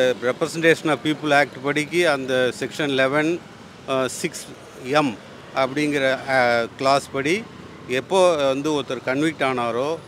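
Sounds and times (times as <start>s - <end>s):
man speaking: 0.0s - 10.0s
street noise: 0.0s - 10.0s.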